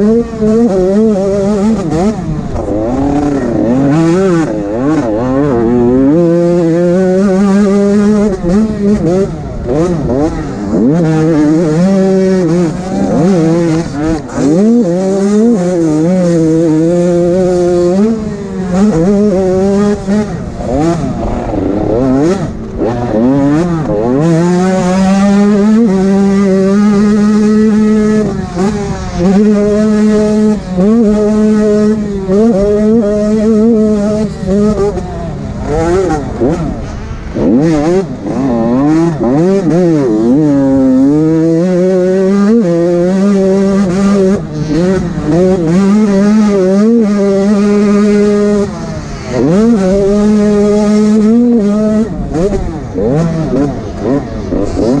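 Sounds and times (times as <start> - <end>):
motorbike engine revving: 0.0 - 55.0.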